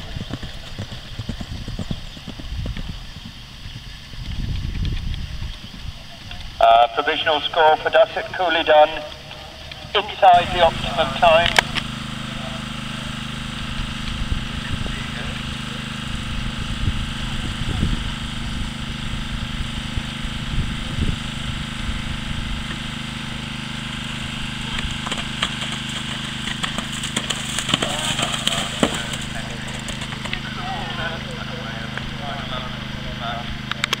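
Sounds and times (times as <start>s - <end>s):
low engine-like hum: 0.0s - 34.0s
indistinct voices: 6.0s - 19.3s, 23.2s - 34.0s.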